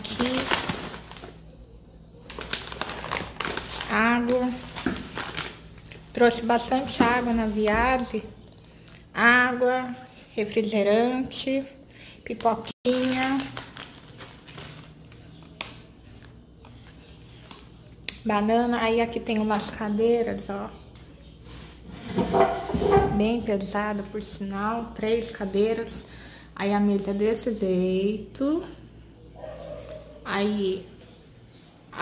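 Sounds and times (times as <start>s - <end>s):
plastic bag and foil crinkling: 0.0s - 8.3s, 12.3s - 17.8s.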